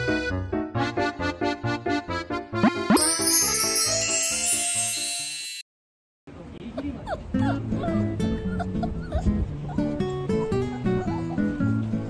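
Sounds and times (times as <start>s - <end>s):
background music: 0.0s - 5.5s
puppy whimpering: 6.8s - 12.0s.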